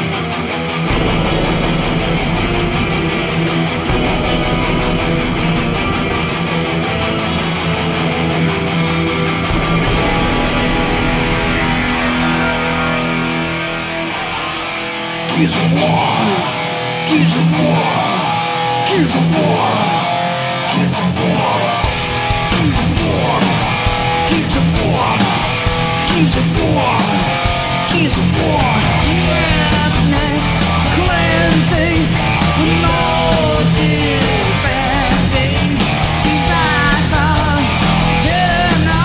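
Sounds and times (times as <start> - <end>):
distorted electric guitars: 0.0 - 39.0
drums and cymbals: 0.9 - 8.1, 21.8 - 39.0
heavy low end: 0.9 - 15.3, 21.8 - 39.0.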